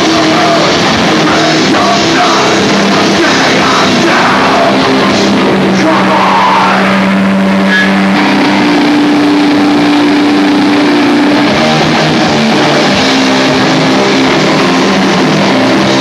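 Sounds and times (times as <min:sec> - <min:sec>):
distorted electric guitar chords: 0:00.0 - 0:16.0.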